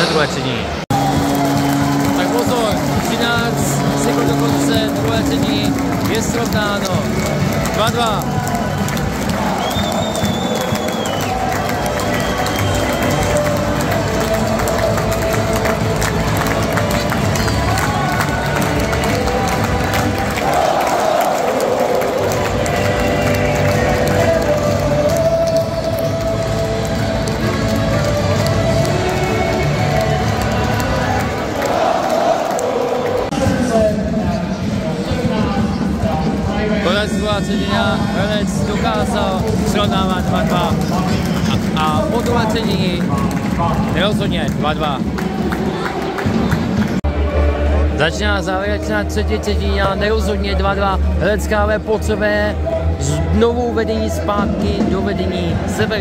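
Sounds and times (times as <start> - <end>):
crowd cheering and chanting: 0.0 - 56.0
music over arena speakers: 0.0 - 56.0.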